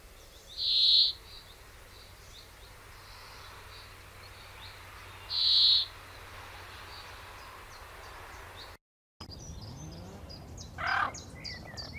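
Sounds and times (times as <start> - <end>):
low outdoor background: 0.0 - 11.9
small birds chirping: 0.0 - 11.9
harsh large bird call: 5.2 - 5.9, 9.7 - 11.9.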